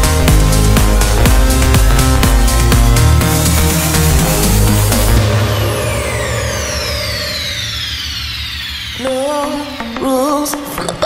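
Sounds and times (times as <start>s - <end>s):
held low bass note: 0.0s - 9.2s
synth sweep gliding downward: 0.0s - 10.5s.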